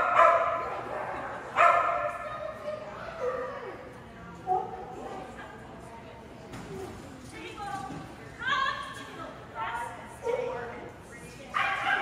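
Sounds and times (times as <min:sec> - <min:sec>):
dog barking: 0:00.0 - 0:00.7, 0:01.6 - 0:02.1, 0:11.6 - 0:12.0.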